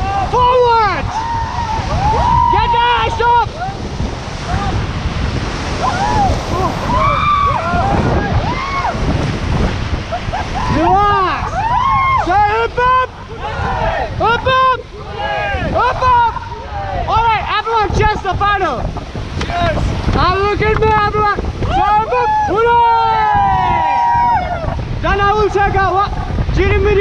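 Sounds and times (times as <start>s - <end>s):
people shouting and whooping: 0.0s - 4.8s, 5.8s - 9.1s, 10.1s - 17.5s, 21.6s - 24.9s
rushing whitewater: 0.0s - 27.0s
wind buffeting microphone: 0.0s - 27.0s.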